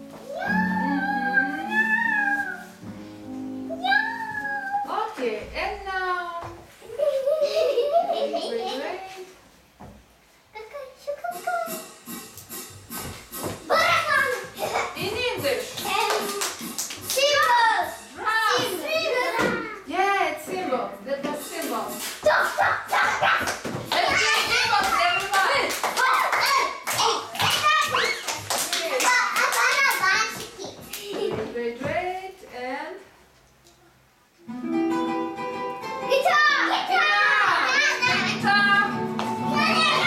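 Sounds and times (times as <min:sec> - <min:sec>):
music with held notes: 0:00.0 - 0:04.4, 0:34.4 - 0:36.8, 0:38.0 - 0:40.0
children's sing-song voices: 0:00.1 - 0:02.9, 0:36.1 - 0:40.0
children shrieking and calling out: 0:36.3 - 0:38.3.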